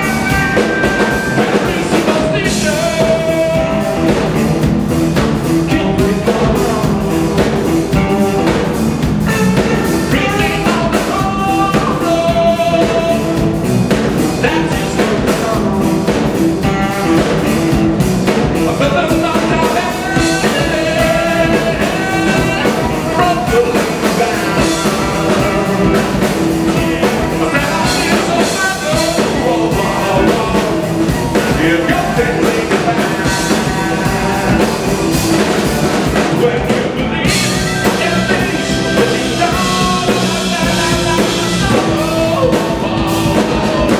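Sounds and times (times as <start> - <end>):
blues band playing live: 0.0 - 43.9
drum kit: 0.0 - 43.9
electric guitars: 0.0 - 43.9
person singing: 0.0 - 43.9
harmonica: 36.5 - 43.9.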